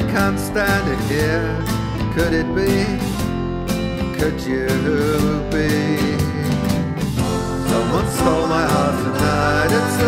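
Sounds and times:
bass: 0:00.0 - 0:10.0
drums: 0:00.0 - 0:10.0
guitar: 0:00.0 - 0:10.0
gliding lead melody: 0:00.5 - 0:05.0.

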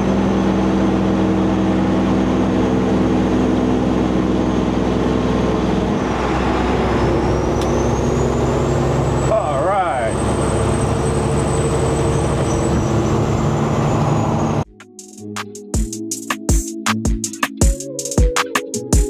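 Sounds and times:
diesel truck engine cruising: 0:00.0 - 0:14.7
road and tyre noise: 0:00.0 - 0:14.7.

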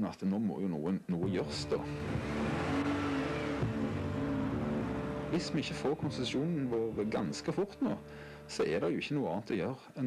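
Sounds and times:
car engine humming: 0:01.4 - 0:07.1.

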